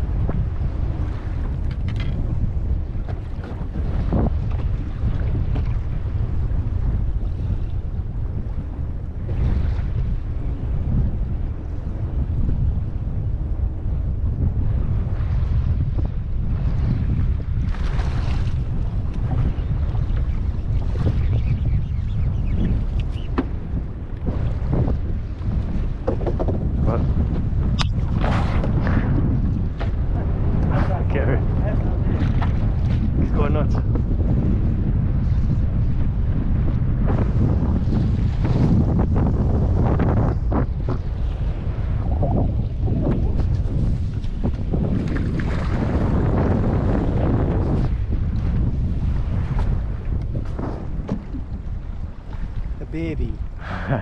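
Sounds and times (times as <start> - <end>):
waves slapping boat hull: 0.0 - 54.0
wind buffeting microphone: 0.0 - 54.0.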